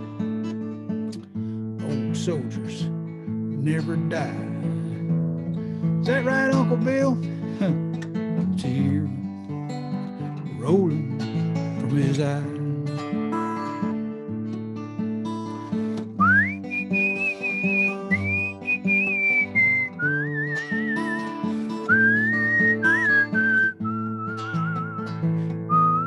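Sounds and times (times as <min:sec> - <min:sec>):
acoustic guitar strumming: 0:00.0 - 0:26.0
man whistling a melody: 0:16.2 - 0:26.0.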